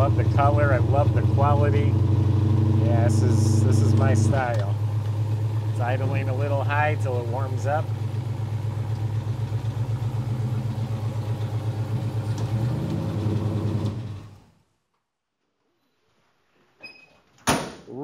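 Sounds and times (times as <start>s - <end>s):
engine idling high: 0.0s - 14.4s.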